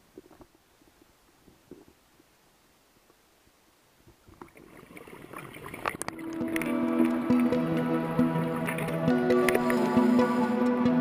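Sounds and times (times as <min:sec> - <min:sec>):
underwater gurgling: 0:04.1 - 0:11.0
crackling clicks: 0:04.3 - 0:07.9, 0:08.6 - 0:10.4
sustained music notes: 0:06.1 - 0:11.0.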